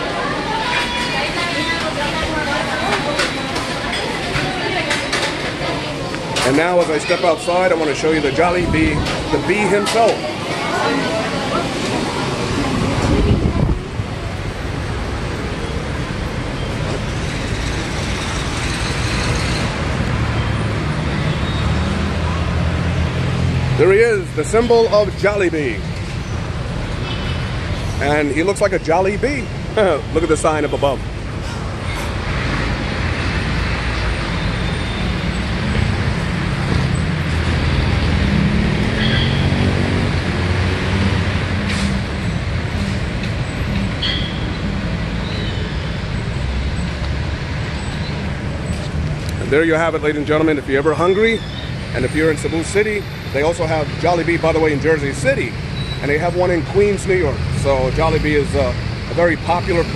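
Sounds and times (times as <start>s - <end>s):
road traffic din: 0.0s - 59.9s.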